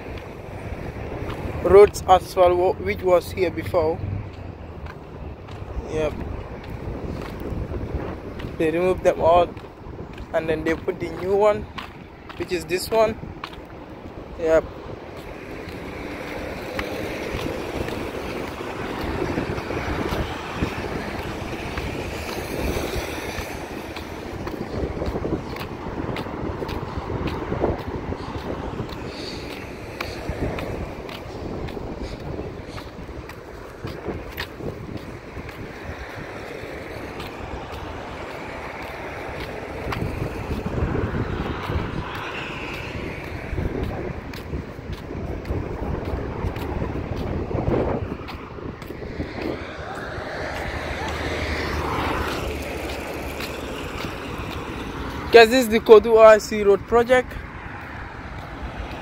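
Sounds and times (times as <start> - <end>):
light road traffic passing: 0.0 - 59.0
wind on microphone: 0.0 - 59.0.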